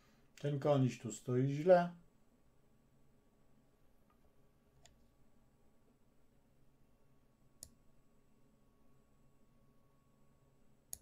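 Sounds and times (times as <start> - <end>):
computer mouse clicks: 4.8 - 5.0, 7.6 - 7.8.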